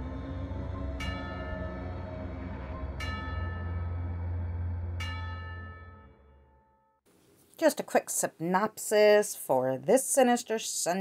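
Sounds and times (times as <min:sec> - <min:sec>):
low steady drone: 0:00.0 - 0:06.5
deep bell tolling: 0:00.7 - 0:07.0.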